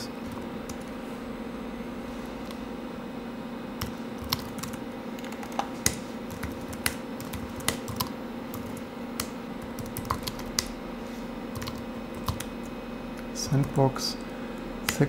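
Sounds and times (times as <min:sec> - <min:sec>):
steady low hum: 0:00.0 - 0:15.0
keyboard keystrokes: 0:03.8 - 0:10.7, 0:11.5 - 0:12.5.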